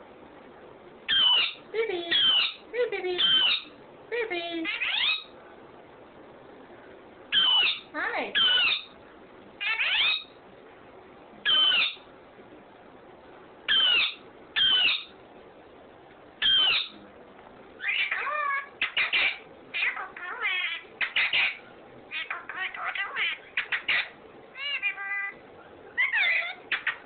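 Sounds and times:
parakeet calling: 1.1 - 3.8, 4.6 - 5.4, 7.3 - 9.0, 9.6 - 10.4, 11.4 - 12.1, 13.7 - 15.2, 16.4 - 17.0, 17.8 - 25.4, 26.0 - 27.0.

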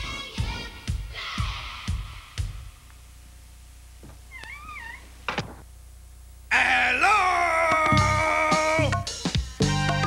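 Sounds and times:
cat meowing: 4.3 - 5.1.

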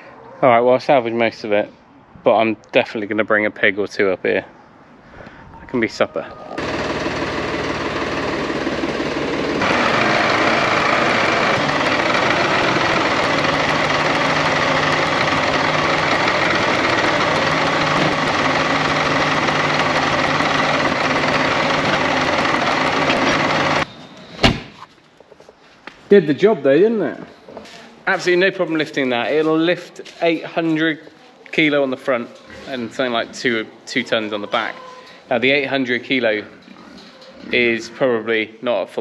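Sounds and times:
tractor diesel engine running: 6.6 - 23.9.

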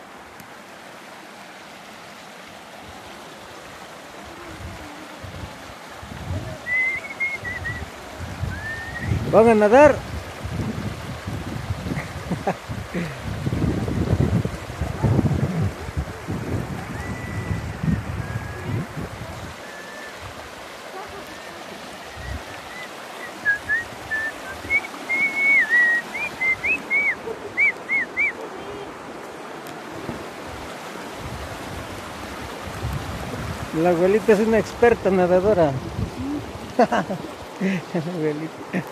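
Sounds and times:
river running over stones: 0.0 - 38.9
wind buffeting microphone: 4.3 - 25.1, 26.1 - 37.6
short high chirping whistles: 6.7 - 7.8, 22.2 - 28.3.

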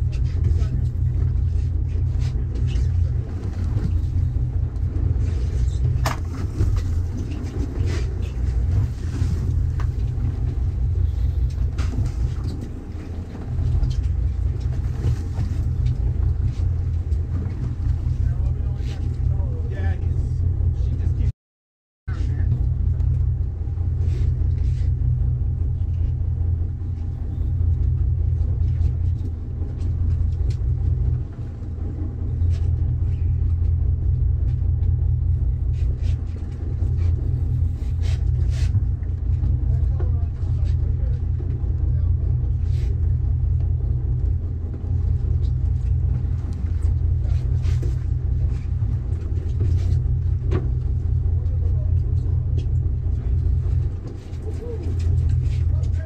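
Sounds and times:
boat engine rumbling: 0.0 - 21.3, 22.1 - 56.0.

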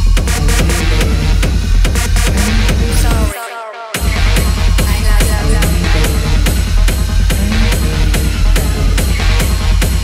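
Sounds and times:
hard techno with heavy kick: 0.0 - 10.0.

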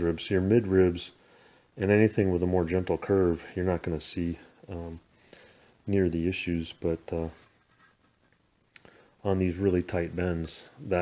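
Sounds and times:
scratchy handling noise: 7.2 - 8.5.

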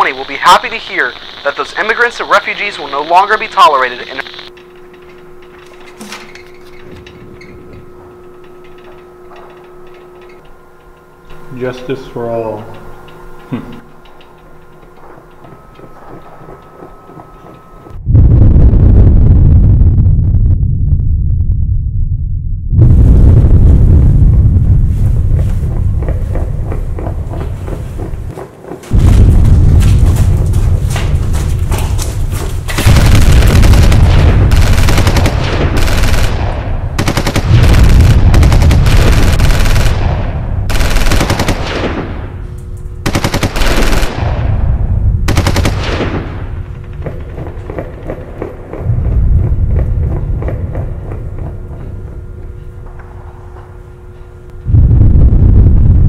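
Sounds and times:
machine-gun fire: 28.9 - 42.4, 43.0 - 48.4.

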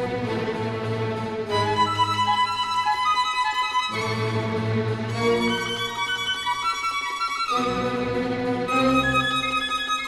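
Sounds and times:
lower string accompaniment: 0.0 - 10.0.

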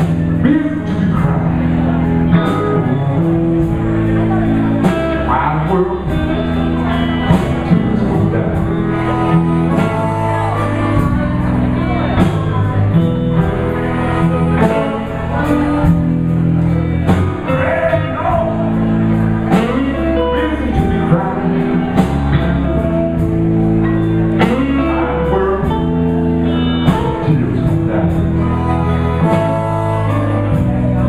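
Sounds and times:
bass guitar: 0.0 - 31.0
electric guitars: 0.0 - 31.0.

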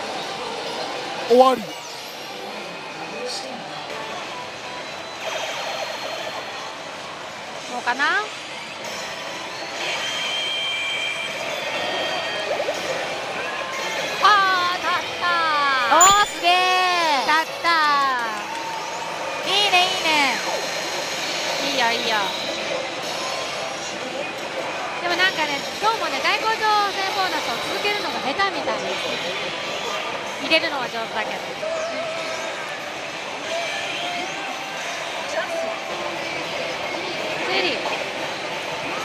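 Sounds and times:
din of a gaming hall: 0.0 - 39.0.

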